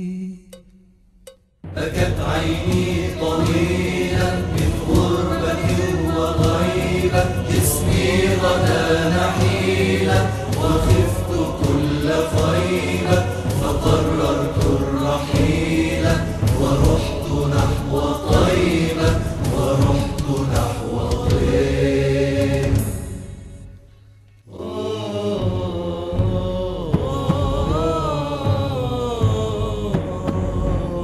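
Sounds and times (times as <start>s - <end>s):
chorus chanting slow melody: 0.0s - 31.0s.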